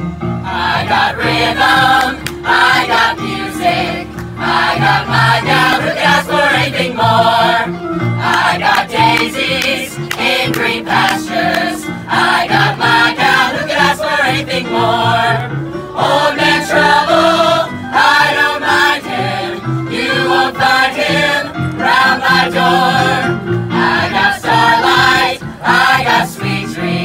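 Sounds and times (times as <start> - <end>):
instrumental accompaniment: 0.0 - 27.0
chorus singing into microphones: 0.4 - 27.0.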